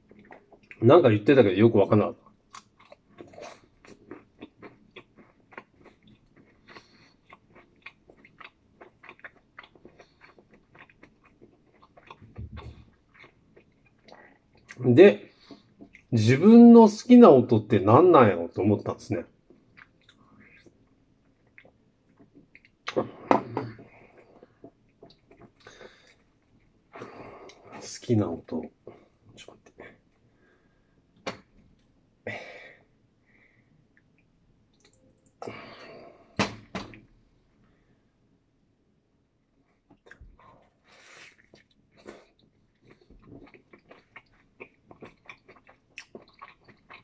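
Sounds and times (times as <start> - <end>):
person chewing food: 0.0 - 0.8, 2.2 - 16.1, 19.4 - 27.8, 39.6 - 47.0.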